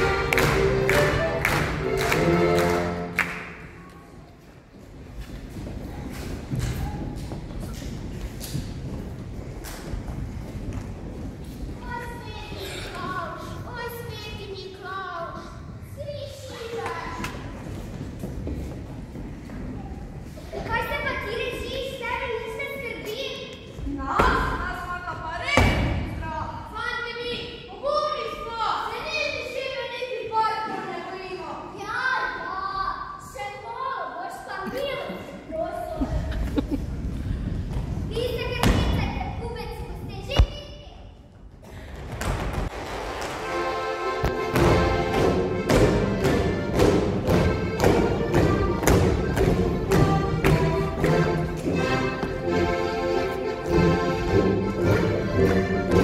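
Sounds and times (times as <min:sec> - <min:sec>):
footsteps on stage floor: 0:00.0 - 0:25.3, 0:41.2 - 0:56.0
young voices speaking: 0:11.8 - 0:17.7, 0:19.5 - 0:37.2, 0:38.0 - 0:41.2.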